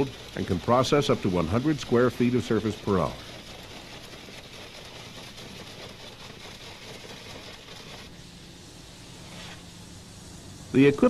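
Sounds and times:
water jet blasting concrete: 0.0 - 8.2
low machine hum: 0.0 - 11.0.

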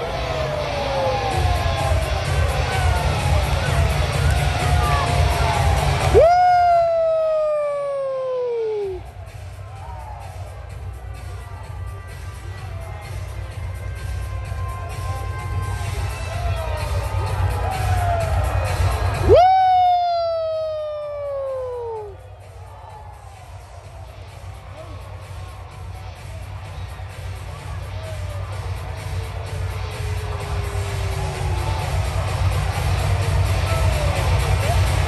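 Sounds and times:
low crowd noise: 0.0 - 35.0
music over loudspeakers: 0.0 - 35.0
fan shouting woo: 2.6 - 9.1, 19.2 - 22.2.

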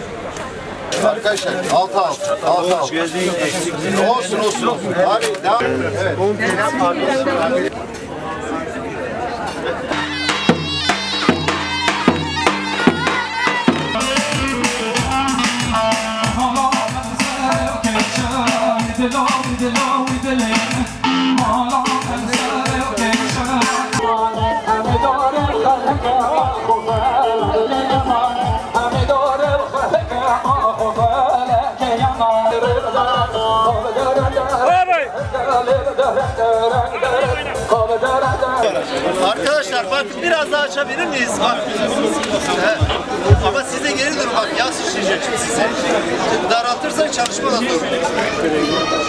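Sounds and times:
shawm reed melody: 9.9 - 24.2
bass drum beats: 9.9 - 38.6, 42.6 - 43.8
music with held notes: 9.9 - 38.8.

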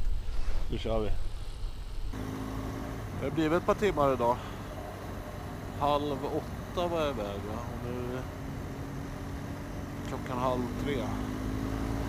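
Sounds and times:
motorcycle engine humming: 2.1 - 12.0.

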